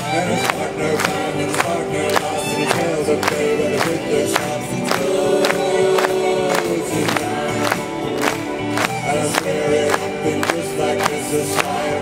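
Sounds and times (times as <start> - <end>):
backing vocalists holding notes: 0.0 - 12.0
live band playing upbeat song: 0.0 - 12.0.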